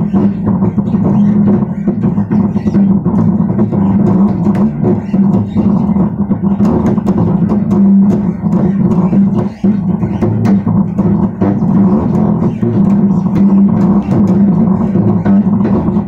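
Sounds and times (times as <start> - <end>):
bass guitar plucked notes: 0.0 - 16.0.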